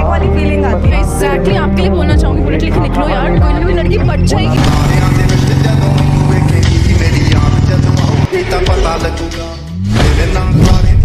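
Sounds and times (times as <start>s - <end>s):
motorcycle engine running: 2.1s - 9.0s.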